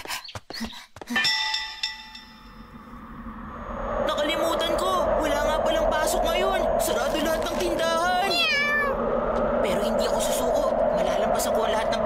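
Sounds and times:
low swelling sound: 2.2s - 12.0s.

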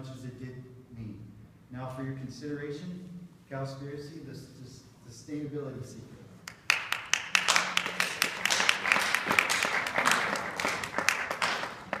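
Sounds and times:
individual sharp claps: 6.4s - 12.0s
audience applause: 6.7s - 12.0s.

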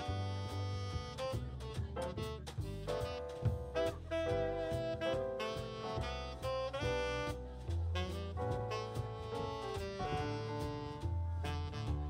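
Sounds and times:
bass: 0.0s - 12.0s
drums: 0.0s - 12.0s
saxophone melody: 0.0s - 12.0s.

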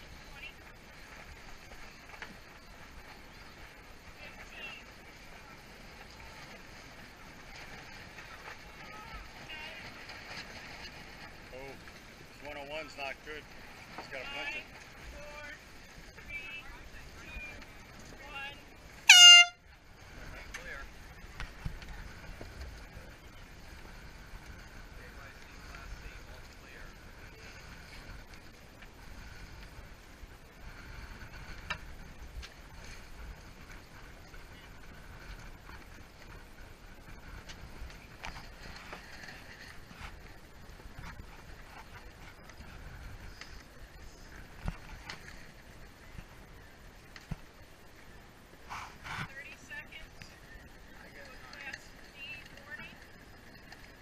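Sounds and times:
choppy water: 0.0s - 54.0s
air horn blast: 19.0s - 19.6s.

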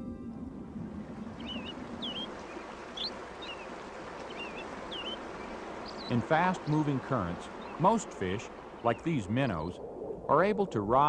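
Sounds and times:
stream water running: 0.4s - 11.0s
bird chirping: 1.2s - 9.8s.

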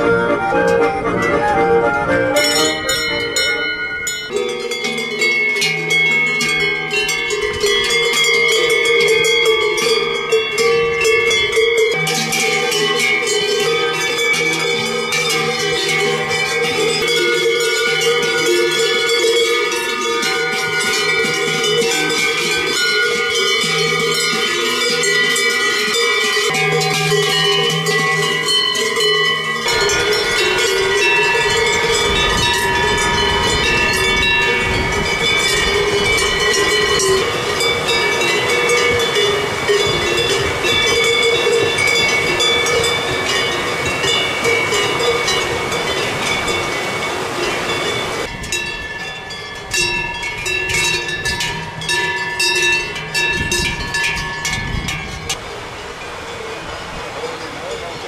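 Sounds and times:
cowbells clanging: 0.0s - 58.0s
fast stream rushing: 0.0s - 58.0s.

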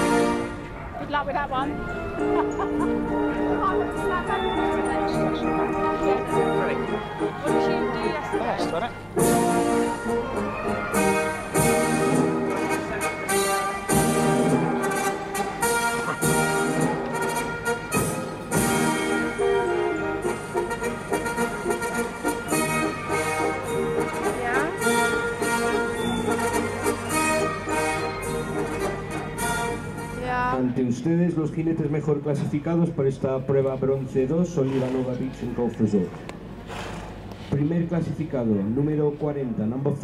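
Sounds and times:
orchestral music over loudspeaker: 0.0s - 30.8s.

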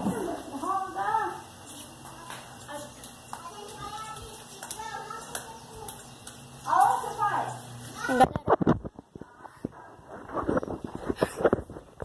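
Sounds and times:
distant children's voices: 0.0s - 10.2s.

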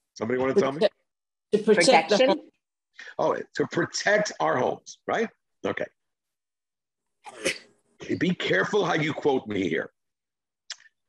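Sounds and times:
person sneezing: 7.2s - 7.7s.

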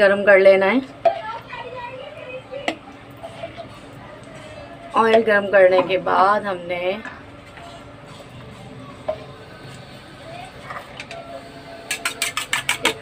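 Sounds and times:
faint voices: 1.0s - 12.3s
fork beating egg in glass bowl: 11.8s - 13.0s.

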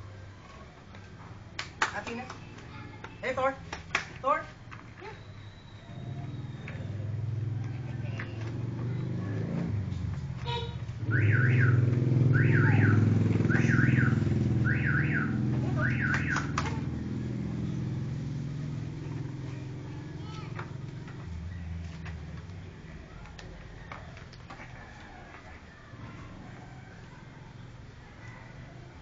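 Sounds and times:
vehicle engine rumbling: 4.6s - 28.4s
electronic alarm warbling: 11.0s - 16.6s.

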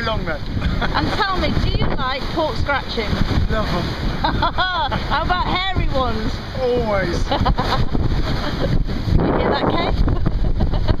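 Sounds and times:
water rushing along hull: 0.0s - 11.0s
wind buffeting microphone: 0.0s - 11.0s.

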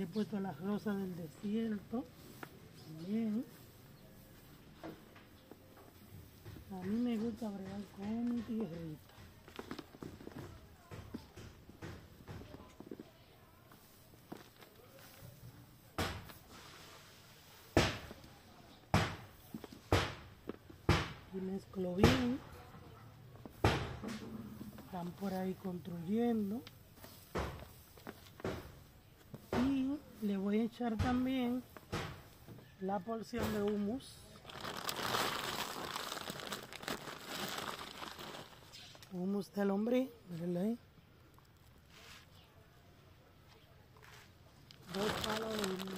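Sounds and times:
hands rustling dry soil mix: 0.0s - 4.6s, 12.2s - 18.3s, 24.9s - 31.7s, 33.0s - 39.4s, 41.5s - 42.5s, 44.0s - 45.9s
loud sharp knocks from building work: 17.8s - 18.1s, 18.9s - 19.3s, 19.9s - 21.2s, 23.6s - 24.3s
plastic bag crinkling: 34.2s - 39.1s, 44.7s - 45.9s
plastic scoop digging soil: 34.4s - 38.8s, 44.0s - 45.9s.

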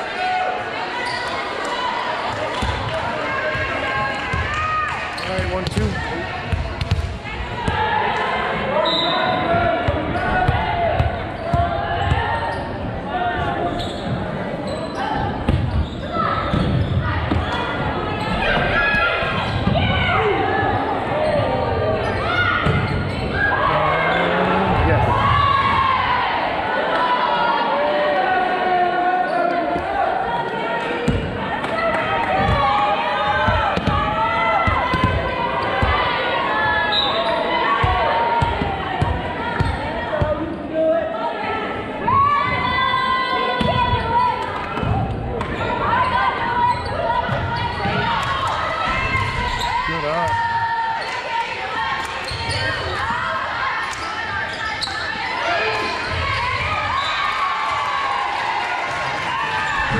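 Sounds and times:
voices calling out in a hall: 0.0s - 59.9s.

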